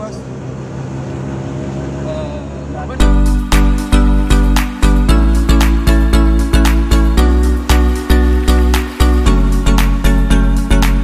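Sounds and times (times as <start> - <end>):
auto-rickshaw engine running: 0.0 - 10.2.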